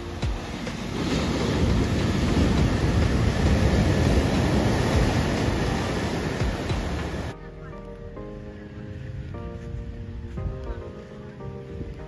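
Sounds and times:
waves breaking against rocks: 0.0s - 7.4s
whitewater rushing: 0.0s - 7.4s.

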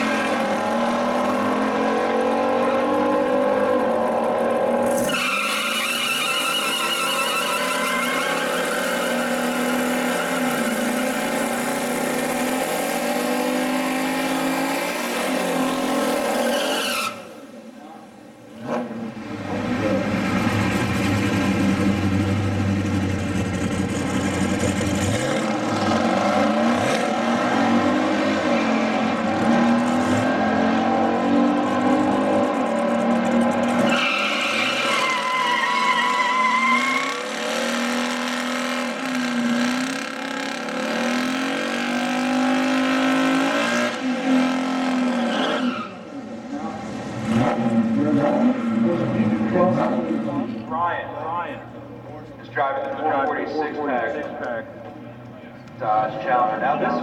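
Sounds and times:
engines idling and blipping: 0.0s - 12.8s
tyre squeal: 4.9s - 11.4s, 16.4s - 17.3s, 33.8s - 37.3s, 45.2s - 46.1s
car engine revving: 18.5s - 45.6s, 46.5s - 50.7s.

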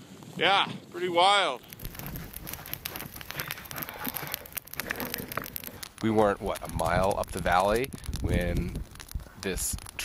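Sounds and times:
campfire crackling and popping: 0.0s - 10.0s.

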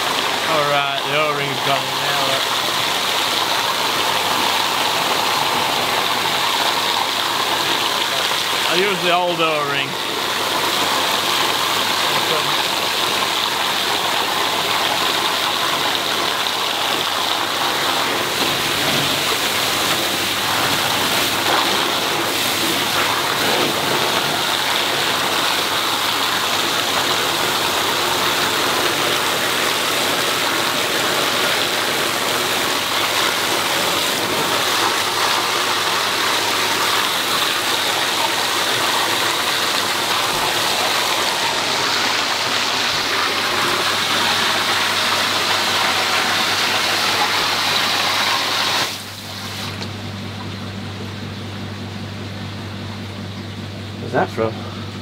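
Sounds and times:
water gushing onto concrete: 0.0s - 49.9s.

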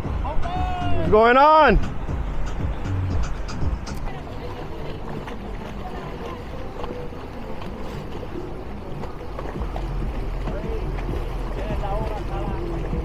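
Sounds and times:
faint music: 0.0s - 13.0s
outboard boat engine: 0.0s - 13.0s
water rushing: 0.0s - 13.0s
faint voices: 3.7s - 13.0s.

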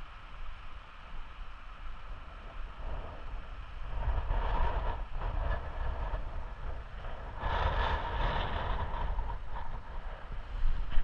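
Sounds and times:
wind buffeting microphone: 1.9s - 11.0s.

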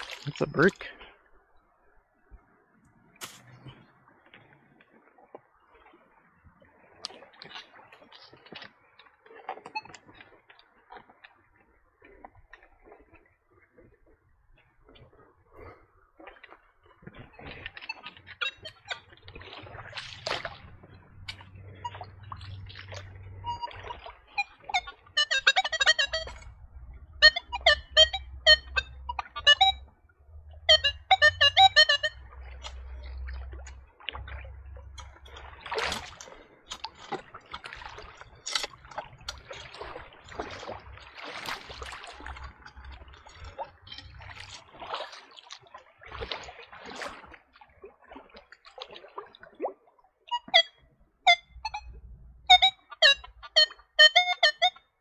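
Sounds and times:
water splashing: 0.0s - 55.0s
metal detector buzzy beeping: 17.9s - 19.1s, 21.2s - 22.4s, 23.0s - 26.5s, 27.1s - 29.9s, 30.6s - 32.2s, 50.3s - 54.9s.

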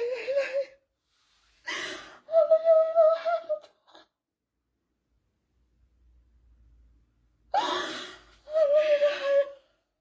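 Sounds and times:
woman crying and wailing: 0.0s - 0.8s, 2.0s - 3.9s, 7.6s - 9.7s.

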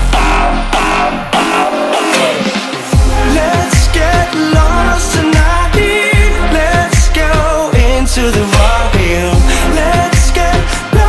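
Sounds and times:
electronic dance music: 0.0s - 11.0s
heavy bass: 0.0s - 11.0s.

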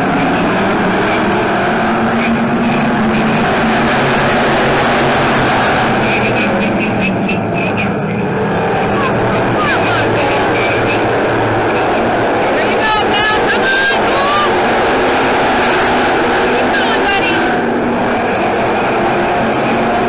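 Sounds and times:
racing car engines: 0.0s - 20.0s.

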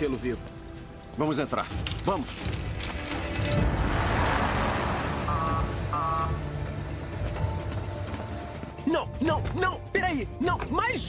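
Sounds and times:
ambulance engine rumble: 1.7s - 8.8s.

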